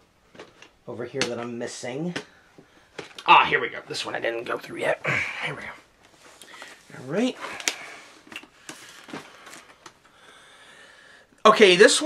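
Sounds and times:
plastic cases clicking and rustling: 2.9s - 3.3s, 7.4s - 10.1s.

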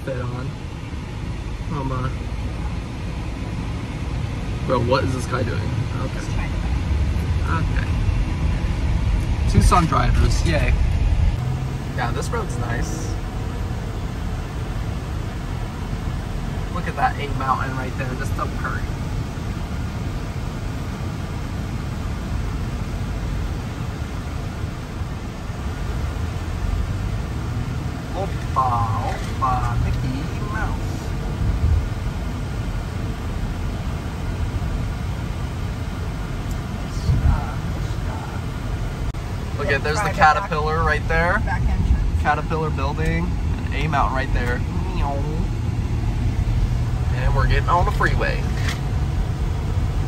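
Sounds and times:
tyre and engine rumble: 0.0s - 50.0s
person speaking: 39.5s - 41.4s.

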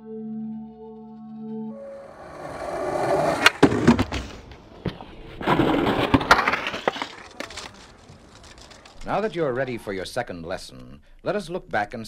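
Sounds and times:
skateboard wheels rolling on concrete: 1.8s - 10.2s
skateboard clacks: 2.1s - 10.0s.

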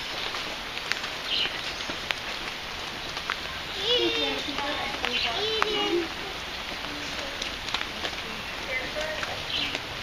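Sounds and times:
steady outdoor hiss: 0.0s - 10.0s.

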